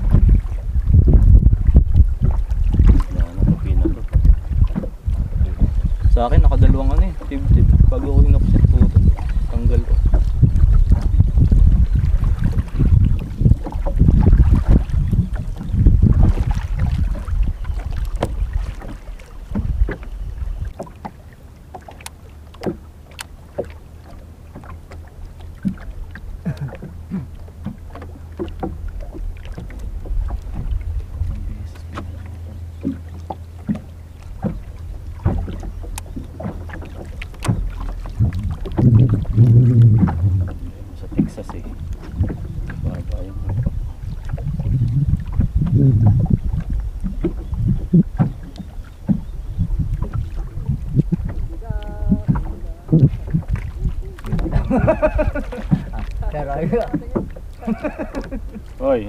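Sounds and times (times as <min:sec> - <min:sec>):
wind buffeting microphone: 0:00.0 - 0:22.0, 0:22.6 - 0:59.0
water slapping against boat: 0:00.0 - 0:59.0
light clicks and knocks: 0:27.6 - 0:38.0.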